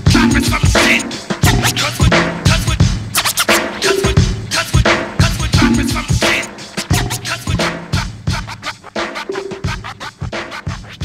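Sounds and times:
hip hop beat: 0.0 - 11.0
turntable scratching: 0.0 - 11.0.

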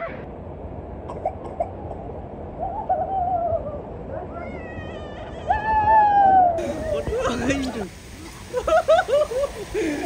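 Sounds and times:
person whooping: 5.4 - 7.4.

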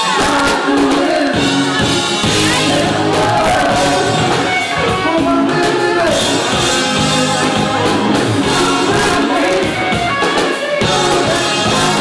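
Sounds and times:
lead and backing vocals: 0.0 - 12.0
rock band playing: 0.0 - 12.0.

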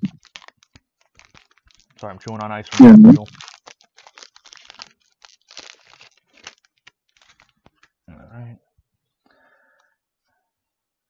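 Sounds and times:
foil wrapper crinkling and tearing: 0.0 - 8.0.

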